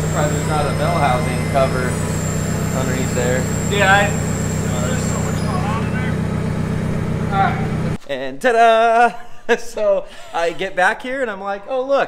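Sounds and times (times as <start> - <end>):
low machine hum: 0.0 - 8.0
thin high whine: 0.0 - 8.0.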